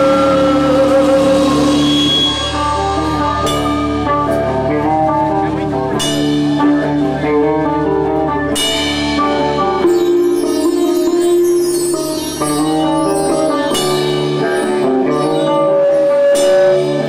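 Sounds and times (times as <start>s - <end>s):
drum kit: 0.0s - 17.0s
electric guitar notes: 0.0s - 17.0s
live rock band: 0.0s - 17.0s.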